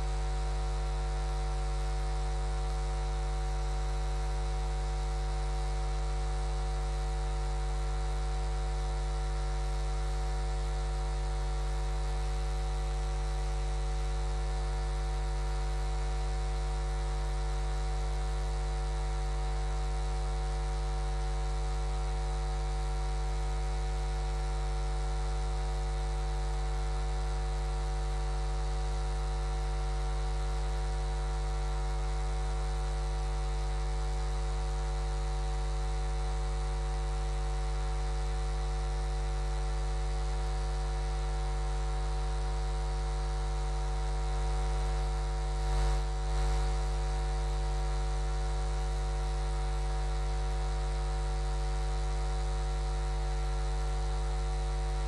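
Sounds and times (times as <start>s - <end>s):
electrical mains hum: 0.0s - 0.2s.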